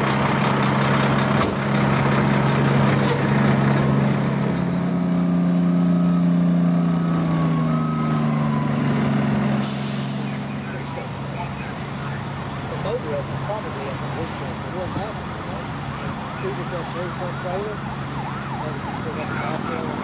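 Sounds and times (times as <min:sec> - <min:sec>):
diesel trucks idling: 0:00.0 - 0:20.0
air hiss burst: 0:09.6 - 0:10.5.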